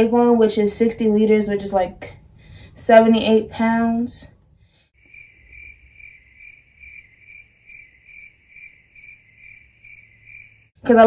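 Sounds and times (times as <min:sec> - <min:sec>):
cricket chirping: 0:05.0 - 0:10.8.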